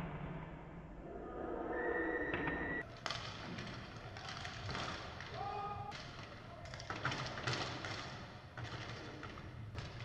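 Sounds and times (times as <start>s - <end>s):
voices in sports hall: 0.6s - 10.0s
hockey sticks and puck knocking: 2.4s - 10.0s.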